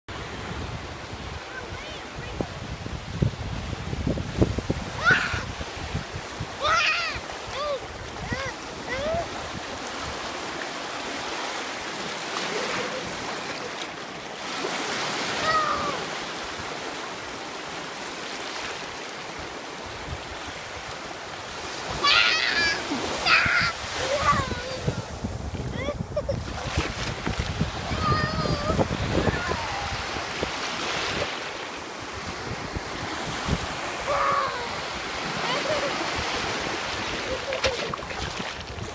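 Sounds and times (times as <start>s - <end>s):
wind buffeting microphone: 0.1s - 11.4s, 19.8s - 38.9s
ocean surf breaking: 0.1s - 38.9s.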